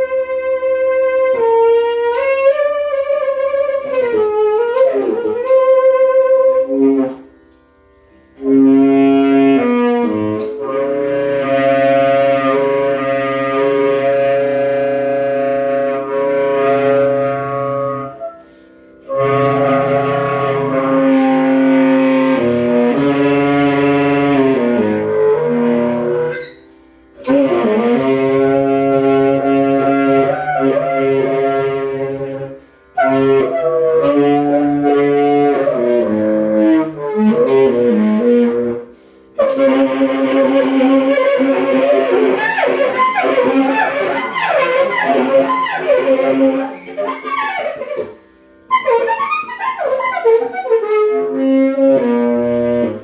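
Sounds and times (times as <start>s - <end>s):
solo saxophone free jazz: 0.0s - 53.0s.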